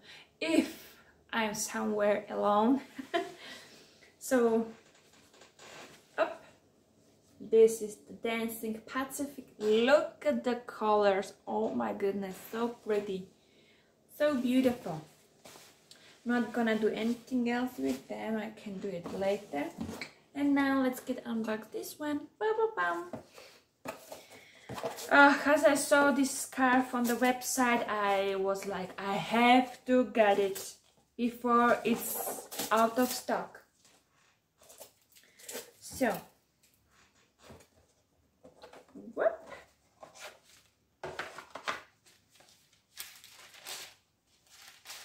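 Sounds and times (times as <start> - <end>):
paper and cardboard rustling: 23.9 - 25.4, 39.6 - 45.0.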